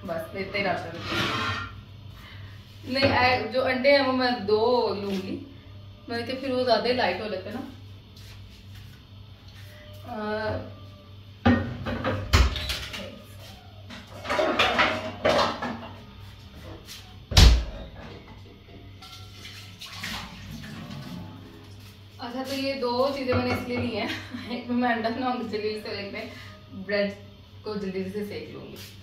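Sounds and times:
cookware knocking and clattering: 14.0s - 16.0s, 23.3s - 24.1s.

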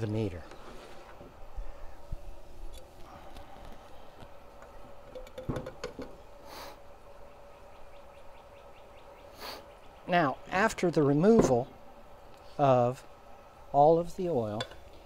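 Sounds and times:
faint steady hum: 0.0s - 15.0s
metal meter knocking on can: 5.1s - 6.2s.

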